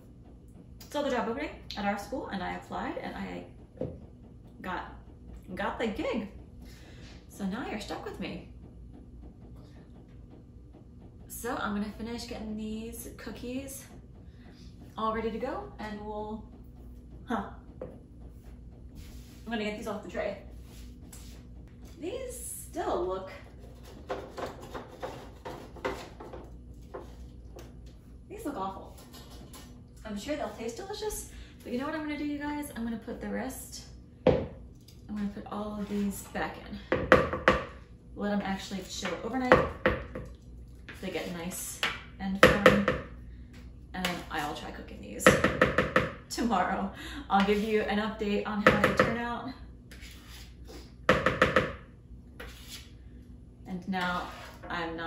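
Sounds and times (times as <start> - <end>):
spatula scraping metal baking sheet: 49.9 - 50.7, 52.4 - 52.9, 54.0 - 54.7.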